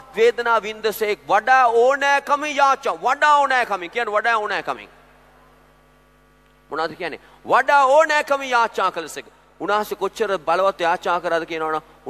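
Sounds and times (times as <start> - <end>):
man's voice: 0.0 - 4.9
faint electrical mains hum: 0.0 - 12.0.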